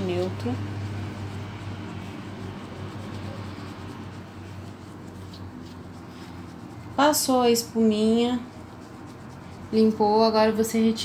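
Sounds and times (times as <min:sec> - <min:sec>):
low hum: 0:00.0 - 0:09.8
gloved hand rubbing lather: 0:00.0 - 0:11.0.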